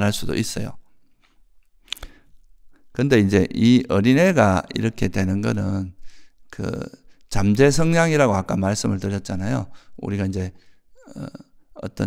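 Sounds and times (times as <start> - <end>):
lip smack: 1.2 - 2.3
faint mouth noises: 1.2 - 2.5.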